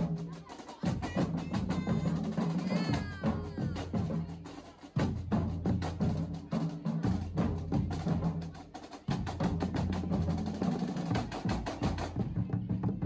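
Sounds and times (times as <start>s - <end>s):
marching band drumline: 0.0s - 13.0s
pitched bass drums: 0.0s - 13.0s.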